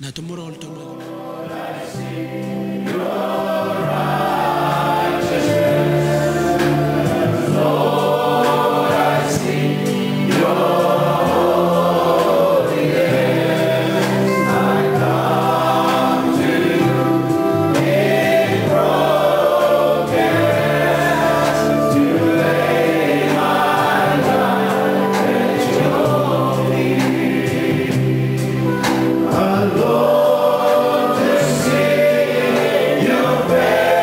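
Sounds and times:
choir singing a hymn: 0.7s - 34.0s.

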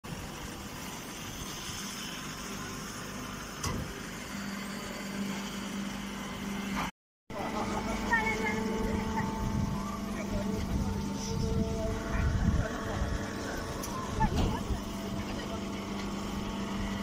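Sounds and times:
baling machinery running: 0.1s - 17.0s
steady motor hum: 0.1s - 17.0s.

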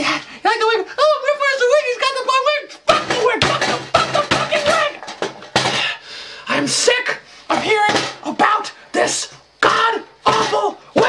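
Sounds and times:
man's strained outbursts: 7.6s - 11.0s.

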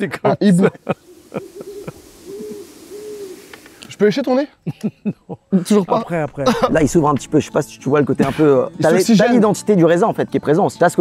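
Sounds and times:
soft low owl-like hoots: 0.8s - 3.9s.

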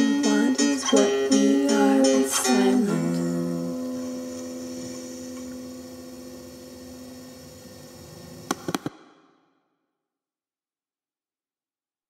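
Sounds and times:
plucked string chord ringing: 0.0s - 7.8s
sharp clicks: 8.5s - 9.1s.

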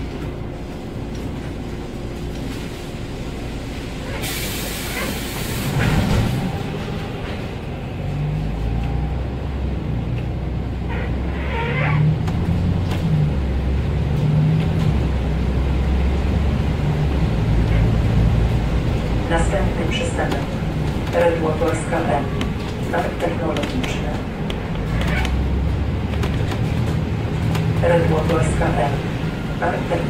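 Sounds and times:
bus diesel engine running: 0.0s - 30.0s.

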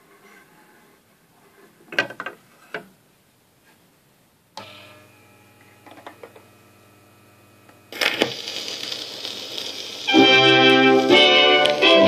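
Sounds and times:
record hiss and crackle: 0.0s - 12.0s.

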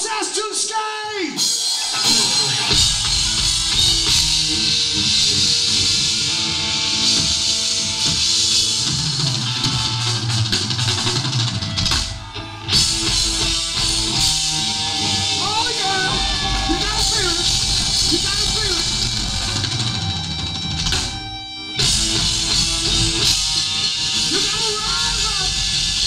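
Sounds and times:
drums: 0.0s - 26.0s
distorted electric guitars: 1.4s - 26.0s.

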